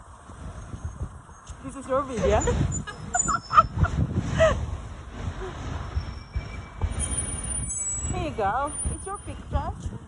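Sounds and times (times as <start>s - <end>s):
road traffic rumbling: 0.0s - 10.0s
high-pitched squeals: 5.9s - 9.3s.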